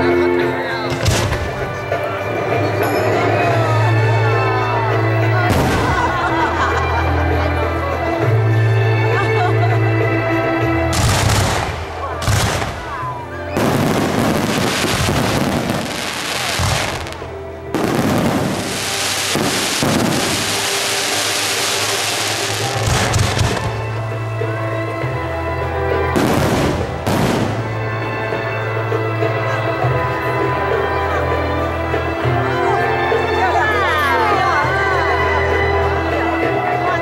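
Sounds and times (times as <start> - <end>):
music: 0.0 - 37.0
fireworks bangs and crackling: 0.9 - 3.1, 5.4 - 6.6, 10.8 - 24.1, 25.9 - 28.3.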